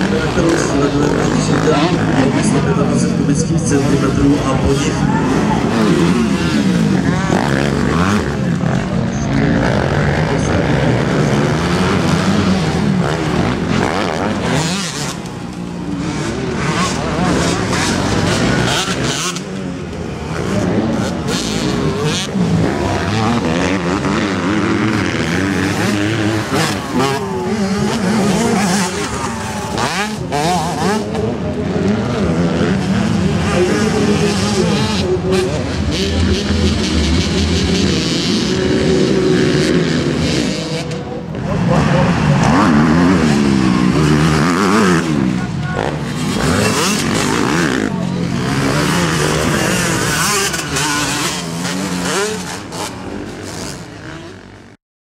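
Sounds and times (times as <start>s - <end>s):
motorcycle engines revving: 0.0s - 54.8s.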